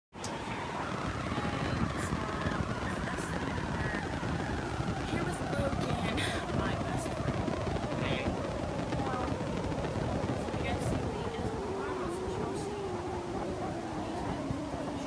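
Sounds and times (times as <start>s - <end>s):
faint voices: 0.2s - 15.0s
steady rumbling noise: 0.2s - 15.0s.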